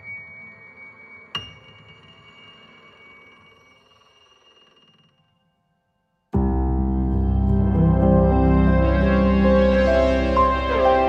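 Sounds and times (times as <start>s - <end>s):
soft piano music: 6.4s - 11.0s.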